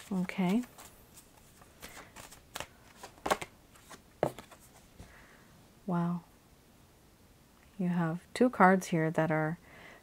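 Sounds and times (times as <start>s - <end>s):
cards snapping and sliding: 1.8s - 4.6s.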